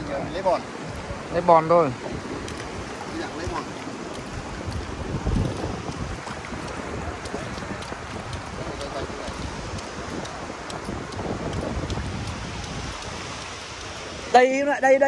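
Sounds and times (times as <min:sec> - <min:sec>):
shallow seawater: 0:00.0 - 0:15.0
wind buffeting microphone: 0:00.0 - 0:15.0
light ticks: 0:04.1 - 0:14.0.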